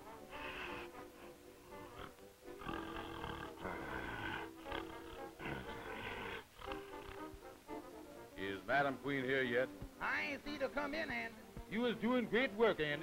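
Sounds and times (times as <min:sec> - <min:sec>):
cartoon soundtrack music: 0:00.0 - 0:13.0.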